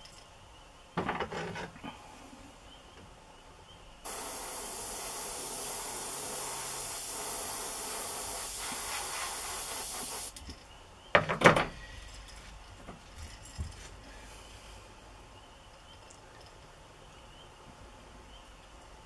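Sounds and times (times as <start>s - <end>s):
airbrush spraying hiss: 4.0s - 10.4s.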